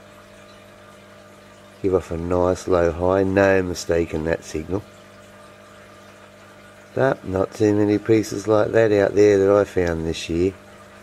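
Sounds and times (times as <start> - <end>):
low background hum: 0.0 - 11.0
man speaking: 1.8 - 4.8, 7.0 - 10.6.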